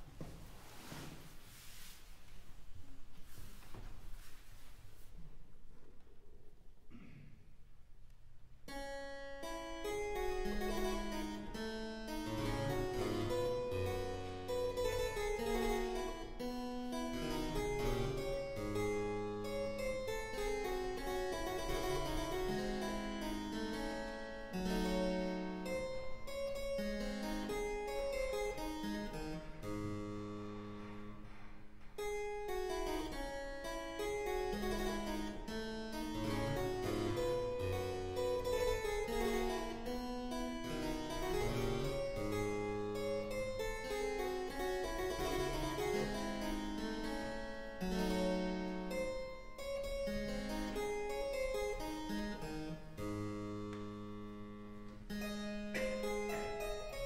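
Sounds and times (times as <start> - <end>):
harpsichord playing: 8.7 - 57.0.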